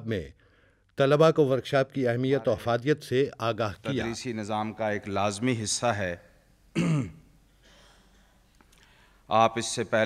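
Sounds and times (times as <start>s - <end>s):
man clearing throat: 6.7s - 8.1s.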